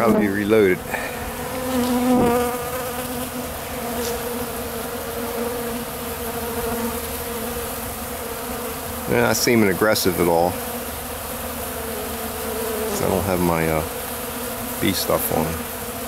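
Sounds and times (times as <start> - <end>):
honeybees buzzing: 0.0 - 16.0.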